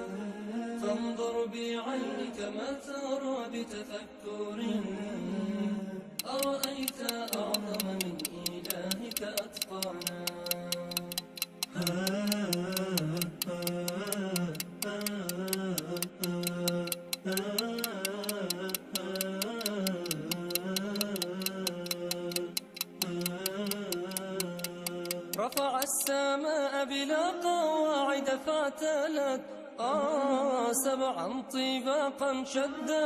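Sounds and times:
wordless sung vocal melody: 0.0s - 33.0s
clock ticking: 6.2s - 26.2s.

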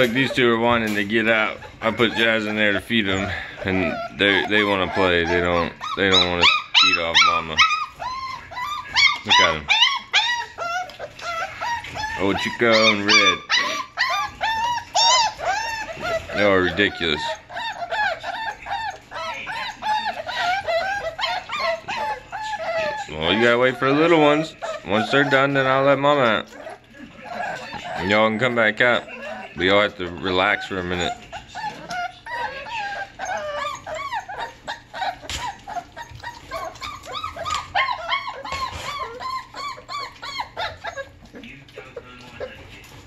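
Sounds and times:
puppies whining and yelping: 0.0s - 43.0s.

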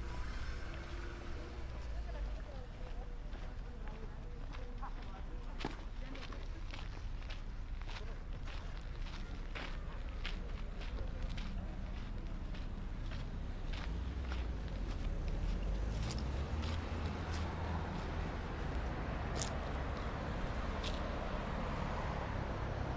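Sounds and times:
road traffic rumble: 0.0s - 22.9s
footsteps on gravel: 1.8s - 20.0s.

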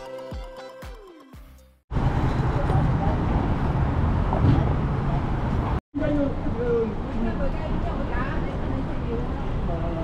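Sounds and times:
passing cars rumbling: 1.9s - 10.0s.

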